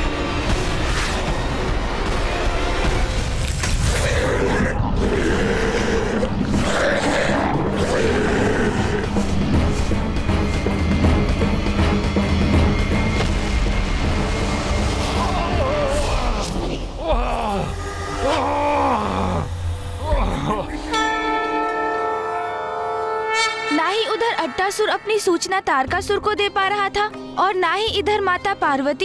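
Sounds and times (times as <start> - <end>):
sustained low drone: 0.0 - 24.8
dramatic background score: 0.0 - 29.0
man crying out: 15.3 - 21.0
man groaning in pain: 15.3 - 21.1
held musical note: 20.8 - 25.6.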